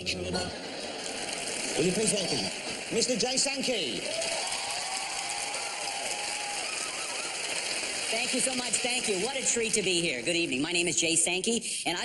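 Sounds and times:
audience applauding: 0.6 - 11.0.

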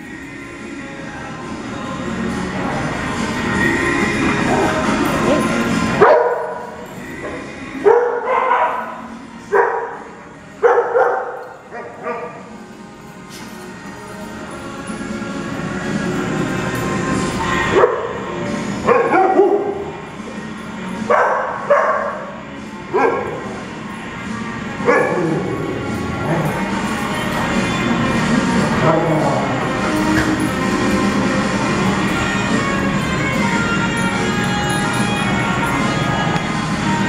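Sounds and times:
dogs barking: 4.2 - 12.6, 17.4 - 20.1, 21.0 - 23.9, 24.8 - 27.1.

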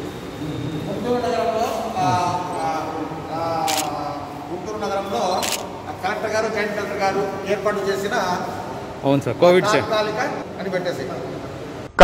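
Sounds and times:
men talking in echoey hall: 0.3 - 12.0.

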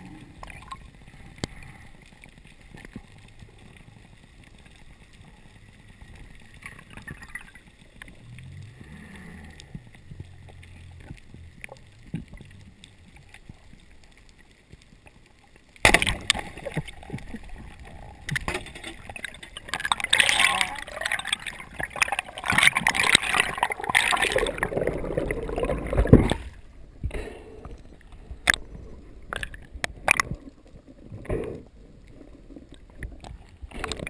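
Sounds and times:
faint underwater clicks and crackles: 0.0 - 34.0.

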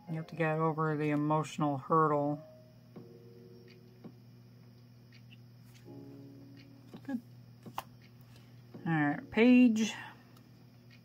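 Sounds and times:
faint background music: 0.0 - 11.0
cards tapping: 6.9 - 8.5.

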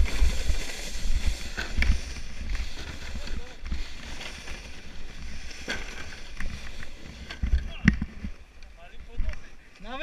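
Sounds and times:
wind rumbling on microphone: 0.0 - 9.5.

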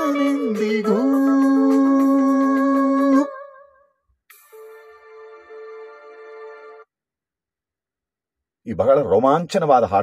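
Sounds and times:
backing track music: 0.0 - 3.4, 4.3 - 6.9.

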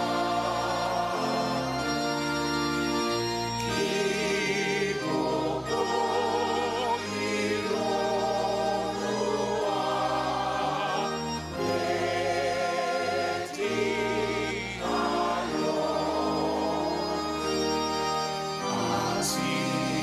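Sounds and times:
congregation singing a hymn: 0.0 - 20.0
organ chords: 0.0 - 20.0.

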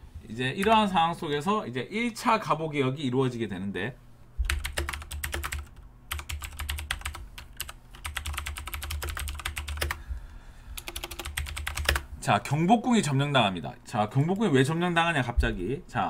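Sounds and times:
typing on computer keyboard: 4.4 - 10.0, 10.8 - 12.0.

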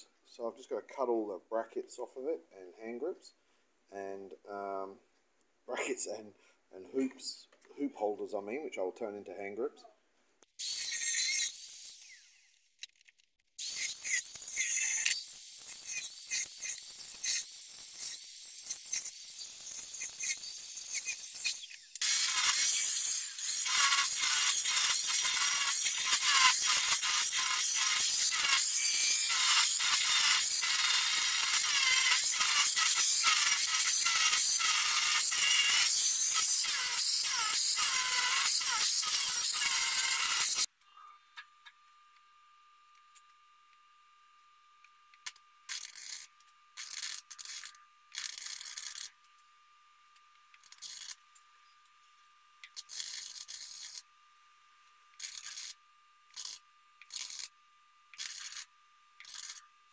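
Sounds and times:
angle grinder cutting metal: 10.6 - 12.8, 13.6 - 40.7, 52.8 - 54.0, 55.2 - 55.8.

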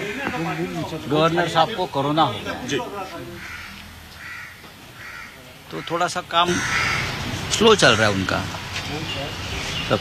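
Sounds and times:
crows cawing: 0.0 - 1.2, 3.0 - 8.4.

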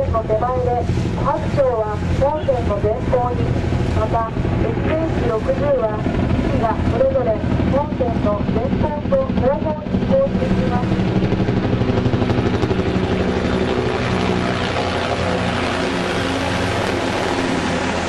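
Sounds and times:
helicopters flying overhead: 0.0 - 18.0.

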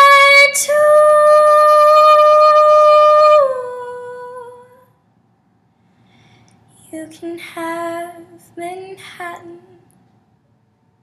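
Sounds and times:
woman singing unaccompanied: 0.0 - 4.9, 6.8 - 9.8.

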